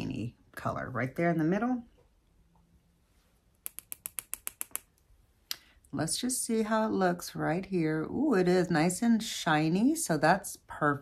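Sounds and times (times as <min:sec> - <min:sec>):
makeup brush tapping on palette: 0:03.7 - 0:04.8.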